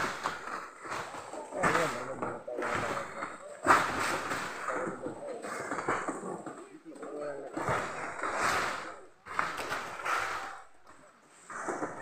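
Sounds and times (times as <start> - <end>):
people talking: 0.8 - 12.0.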